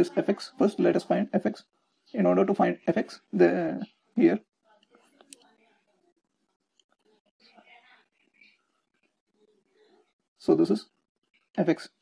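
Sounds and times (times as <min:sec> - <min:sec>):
faint whispered murmur: 0:02.8 - 0:12.0.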